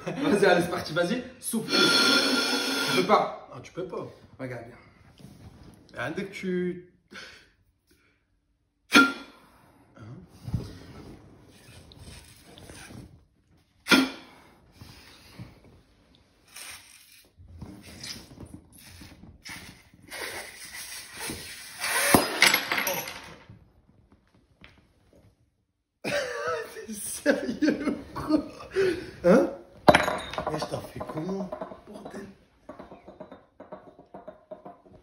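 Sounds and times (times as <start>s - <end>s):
man blowing into glass bottle: 1.6s - 3.1s, 8.9s - 9.7s, 13.9s - 14.4s, 16.5s - 22.4s
glass bottle bursting: 29.8s - 35.0s.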